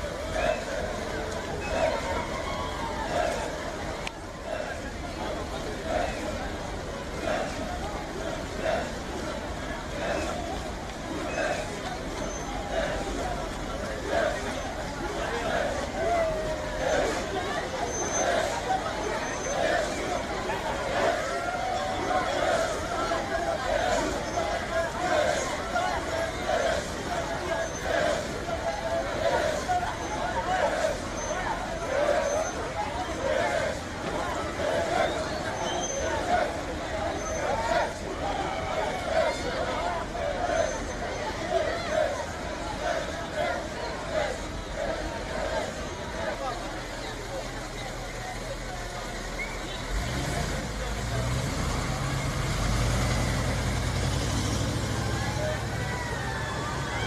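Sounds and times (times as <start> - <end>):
crowd hubbub: 0.0 - 57.0.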